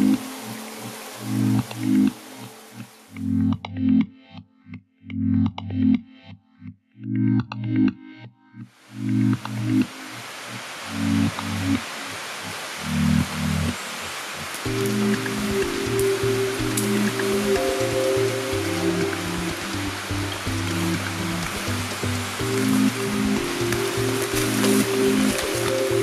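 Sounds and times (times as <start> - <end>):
steady hiss: 0.0 - 3.2, 8.7 - 26.0
low sustained background music: 0.0 - 26.0.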